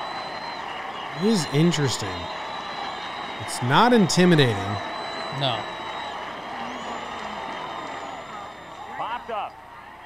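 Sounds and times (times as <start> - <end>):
faint high whine: 0.0 - 9.7
stadium crowd murmur: 0.0 - 10.0.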